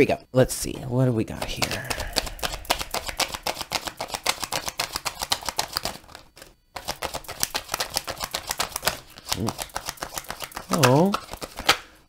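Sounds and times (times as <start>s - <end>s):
cards being shuffled: 1.4s - 12.0s.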